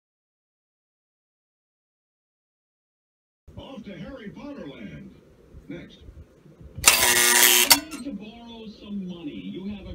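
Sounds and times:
electric mechanism rattling buzz: 6.8s - 8.0s.

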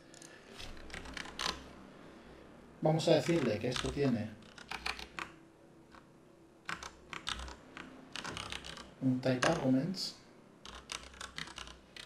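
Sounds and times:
computer keyboard typing: 0.6s - 1.7s, 3.2s - 9.6s, 10.6s - 12.0s.

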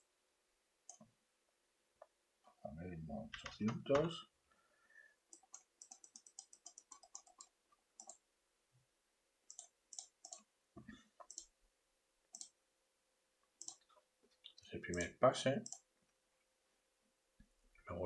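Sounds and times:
computer mouse clicks: 5.3s - 8.2s, 9.5s - 10.5s, 11.2s - 11.5s, 12.3s - 12.6s, 13.6s - 14.0s, 14.9s - 15.9s.

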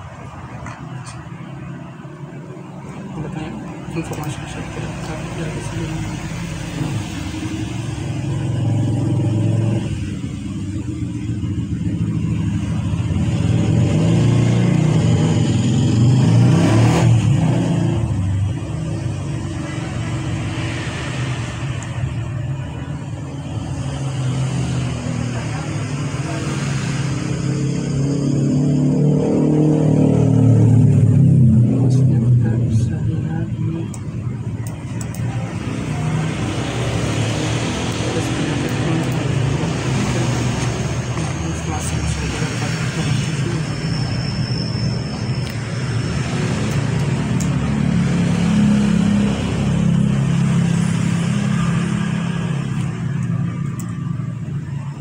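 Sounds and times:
vehicle engines rumbling: 0.0s - 55.0s.

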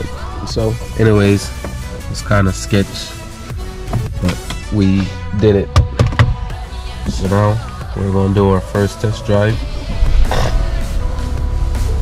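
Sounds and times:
background music: 0.0s - 12.0s
car engine starting and idling: 6.0s - 12.0s.

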